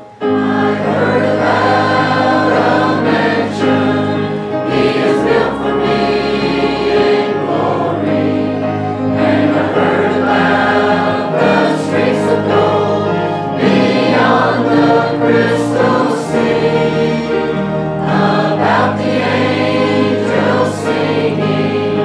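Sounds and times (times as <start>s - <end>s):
choir singing a hymn: 0.0s - 22.0s
organ bass notes: 0.0s - 22.0s.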